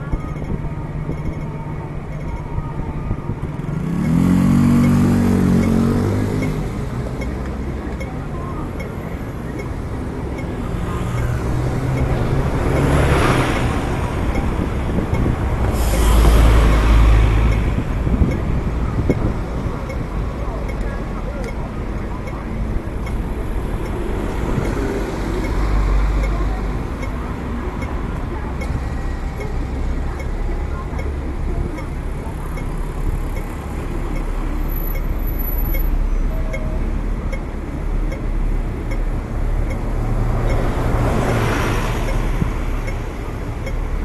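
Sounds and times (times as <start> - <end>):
buses and cars passing: 0.0 - 44.0
traffic rumble: 0.0 - 44.0.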